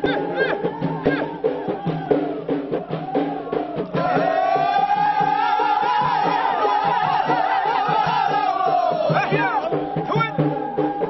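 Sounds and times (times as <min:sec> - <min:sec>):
steady low drum beat: 0:00.0 - 0:11.0
men singing in chorus: 0:02.9 - 0:10.9.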